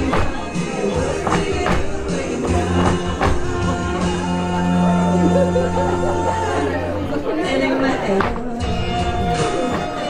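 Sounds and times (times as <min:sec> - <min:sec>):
people chatting in a large hall: 0:00.0 - 0:10.0.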